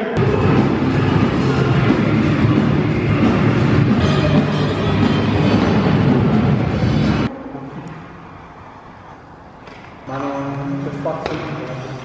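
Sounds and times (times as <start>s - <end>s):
bass guitar: 0.2s - 7.3s
drums: 0.2s - 7.3s.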